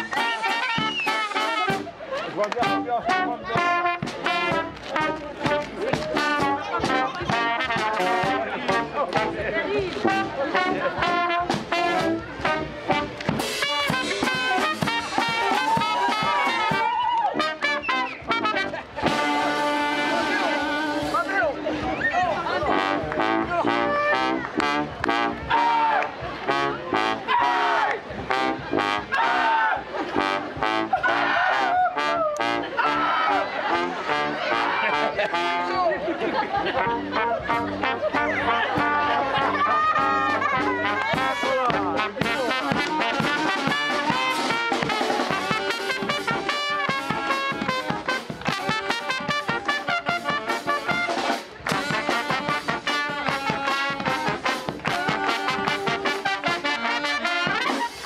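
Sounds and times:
snare drum: 0.0 - 1.9, 2.6 - 9.4, 10.0 - 21.3, 40.2 - 58.0
brass band playing: 0.0 - 58.0.

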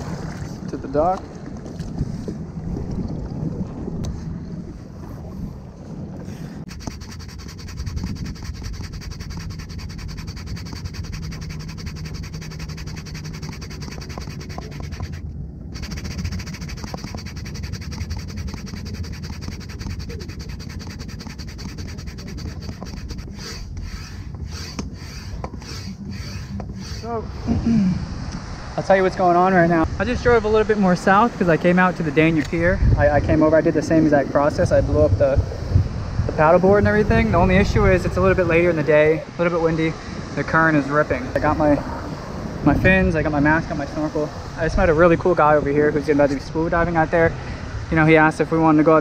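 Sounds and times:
wind buffeting microphone: 0.0 - 48.9.

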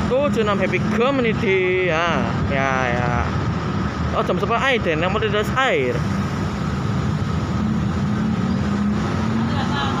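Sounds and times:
street traffic: 0.0 - 10.0
motor scooter engines passing: 5.4 - 10.0.

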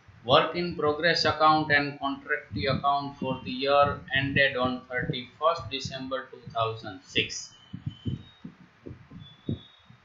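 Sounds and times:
soft low thumps: 0.0 - 10.0.

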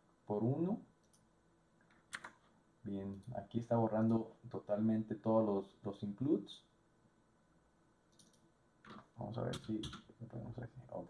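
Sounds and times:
computer mouse clicks: 1.0 - 2.4, 8.1 - 10.1
man speaking: 9.2 - 11.0.

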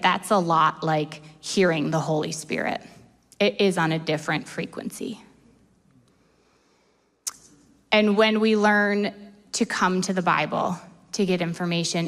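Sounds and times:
woman speaking: 0.0 - 5.3, 7.9 - 12.0.

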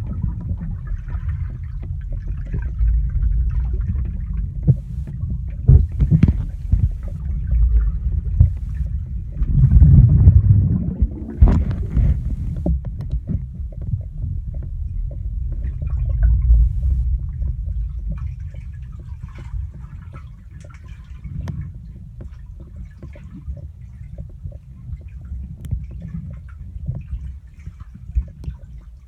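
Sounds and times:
muffled underwater rumble: 0.0 - 29.0
clicks and knocks: 5.7 - 7.2.

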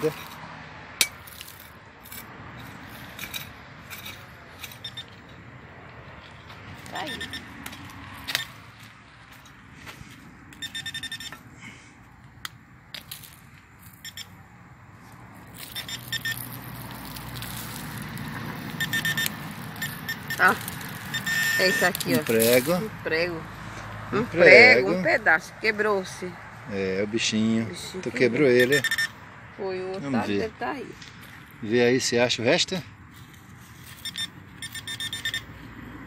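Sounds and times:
metal detector beeping: 3.2 - 5.4, 6.8 - 8.6, 10.5 - 11.5, 13.8 - 14.4, 15.6 - 16.8, 18.6 - 22.6, 28.5 - 29.2, 33.8 - 35.6.

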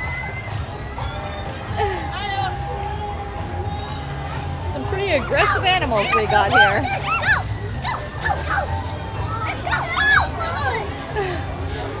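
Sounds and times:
children shouting and squealing: 0.0 - 1.2, 3.9 - 12.0.

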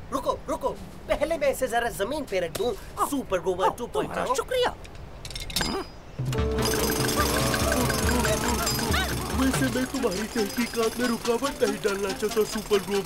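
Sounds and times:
light music: 6.2 - 13.0
jackhammer rattling: 6.3 - 13.0.

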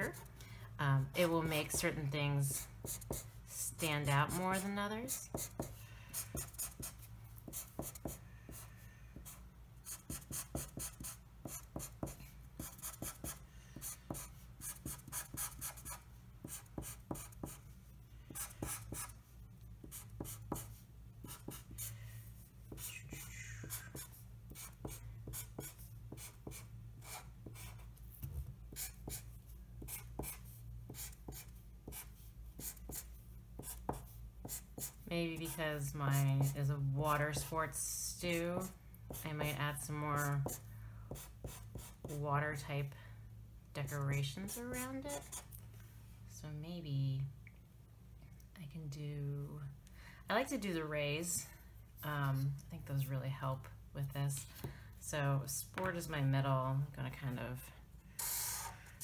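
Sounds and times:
marker scratching on paper: 1.5 - 17.6, 18.3 - 19.2, 19.8 - 21.9, 22.7 - 27.9, 28.7 - 36.7, 43.9 - 45.5.

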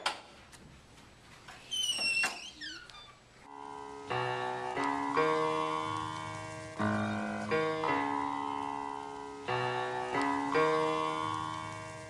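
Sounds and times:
music with keyboard chords: 3.5 - 12.0.

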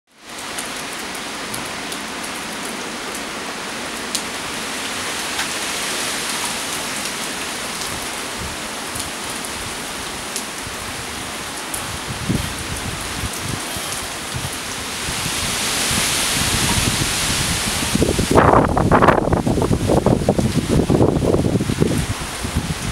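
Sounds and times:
rain on pavement and cars: 0.1 - 22.9
wind rumbling on microphone: 7.8 - 22.9.

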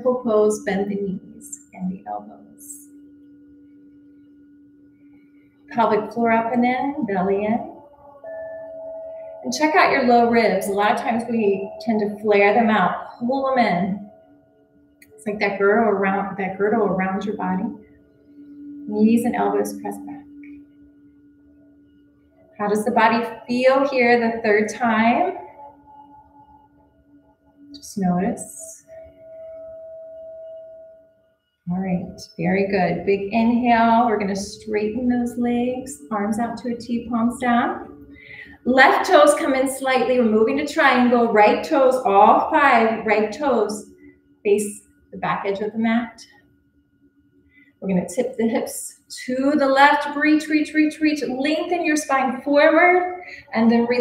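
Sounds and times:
low drone tone: 0.0 - 46.3.

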